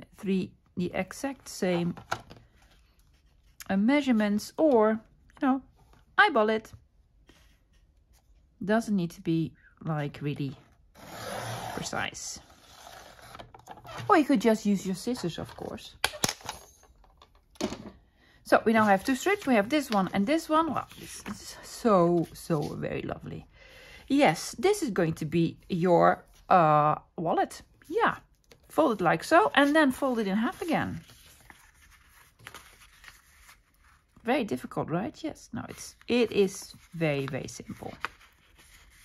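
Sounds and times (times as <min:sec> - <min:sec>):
paper rustling being folded: 0:01.4 - 0:05.1, 0:18.7 - 0:23.1, 0:28.7 - 0:34.2, 0:35.6 - 0:39.0.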